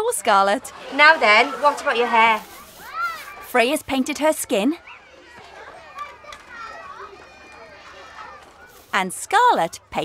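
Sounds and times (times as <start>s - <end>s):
young children talking and playing: 0.0s - 10.0s.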